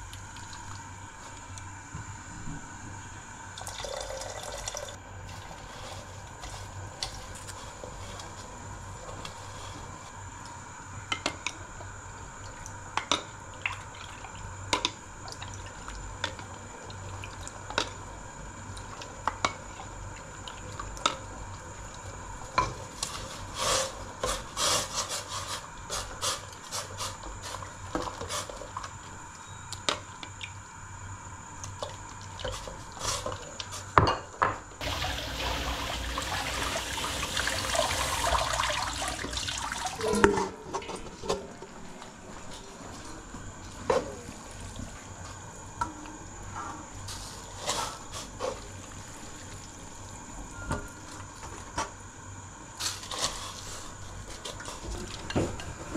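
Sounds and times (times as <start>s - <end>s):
liquid sloshing: 34.8s - 40.2s
running water: 34.8s - 40.3s.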